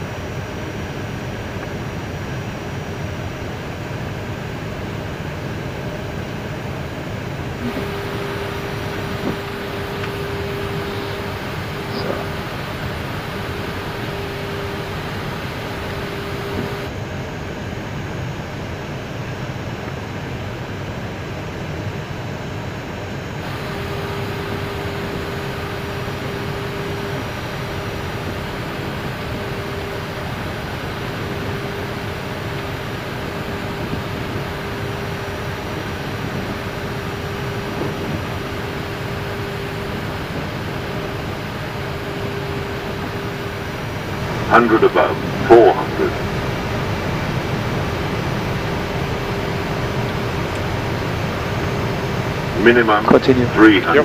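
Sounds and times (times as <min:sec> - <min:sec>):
rushing airflow in cockpit: 0:00.0 - 0:17.1, 0:23.2 - 0:54.0
mid-pitched hum: 0:00.0 - 0:54.0.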